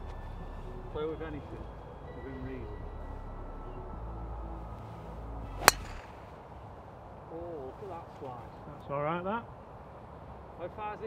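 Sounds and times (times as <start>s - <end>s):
golf club striking ball: 5.6s - 6.4s.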